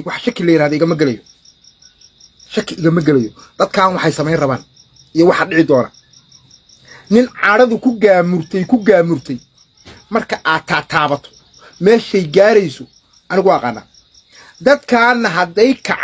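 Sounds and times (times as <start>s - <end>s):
man speaking animatedly: 0.0s - 1.2s, 2.5s - 6.0s, 6.9s - 16.0s
cricket chirping: 0.0s - 16.0s.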